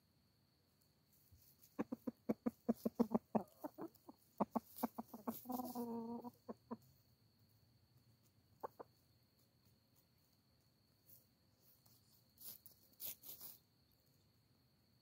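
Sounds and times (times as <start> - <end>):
chickens clucking: 1.4 - 7.1, 8.2 - 9.2
chicken drawn-out call: 1.7 - 6.9.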